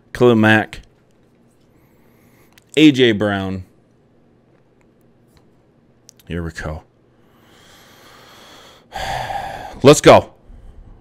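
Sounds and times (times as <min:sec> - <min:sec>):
person drawing a breath: 0:07.2 - 0:09.8.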